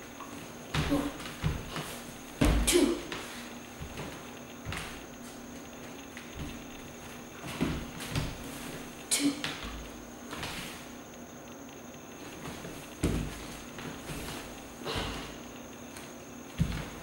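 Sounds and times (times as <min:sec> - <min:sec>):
bare feet thumping on hardwood floor: 0:00.7 - 0:05.4, 0:06.2 - 0:10.7, 0:12.4 - 0:15.4, 0:16.0 - 0:17.0.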